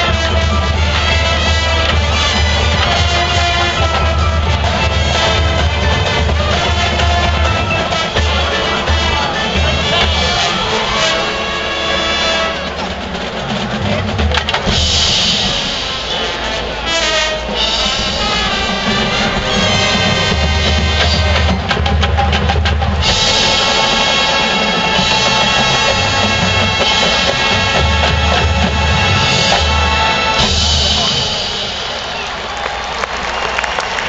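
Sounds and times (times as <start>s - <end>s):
bass drums: 0.0s - 10.9s, 17.6s - 32.0s
marching band playing: 0.0s - 34.0s.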